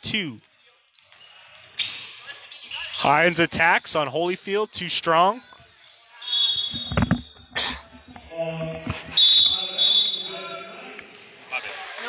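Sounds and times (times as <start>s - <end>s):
sneakers squeaking: 0.9s - 3.1s, 5.5s - 10.6s
crowd voices: 1.1s - 12.0s.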